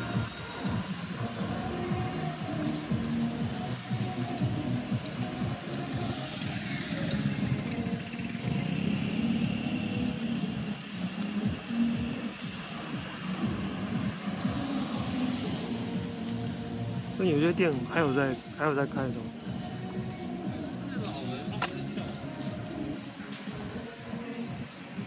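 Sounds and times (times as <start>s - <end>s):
motor scooter: 0.0s - 17.1s
background music: 0.0s - 25.0s
street traffic: 0.0s - 25.0s.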